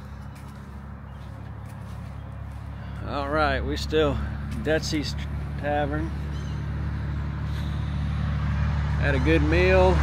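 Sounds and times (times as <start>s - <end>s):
constant low traffic hum: 0.0s - 10.0s
vehicle on wet road: 4.3s - 10.0s.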